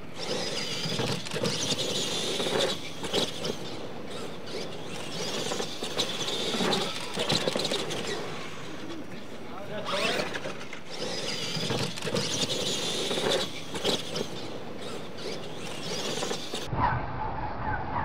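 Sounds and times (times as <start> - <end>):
electric motors whining: 0.0 - 16.7
tyres scrabbling on dirt: 0.0 - 16.7.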